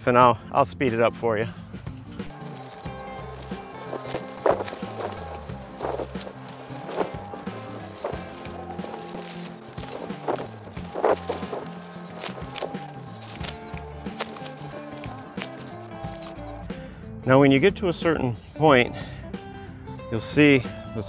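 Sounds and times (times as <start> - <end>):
background music with stepping bass: 1.7 - 18.5.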